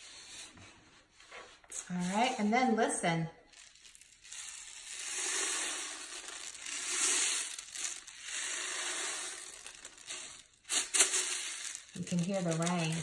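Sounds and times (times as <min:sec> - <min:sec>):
rain stick rice hissing: 0:03.5 - 0:13.0.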